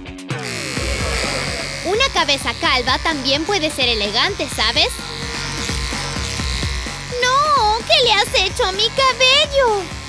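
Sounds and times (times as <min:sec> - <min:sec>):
background music: 0:00.0 - 0:10.0
electric hair clipper buzzing: 0:00.3 - 0:10.0.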